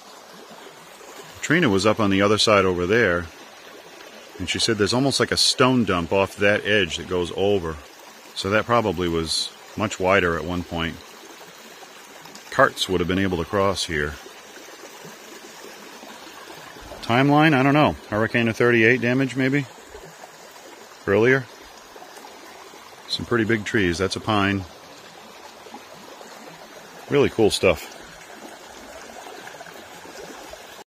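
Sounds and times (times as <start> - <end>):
brook running over rocks: 0.0 - 30.8.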